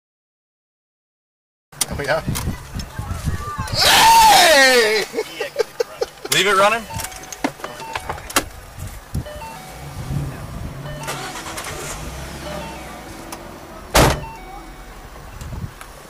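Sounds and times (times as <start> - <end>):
car engine idling: 5.0 - 16.0
car engine revving: 8.5 - 16.0.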